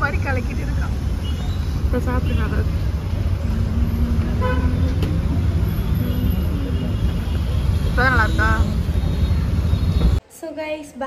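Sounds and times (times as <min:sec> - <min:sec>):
street traffic rumbling: 0:00.0 - 0:10.4
vehicle horn: 0:04.3 - 0:05.0.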